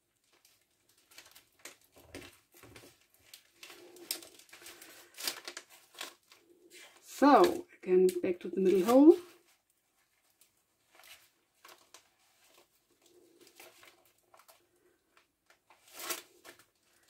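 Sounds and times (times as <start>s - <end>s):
paper pages rustling: 0.0s - 7.6s, 8.5s - 17.0s.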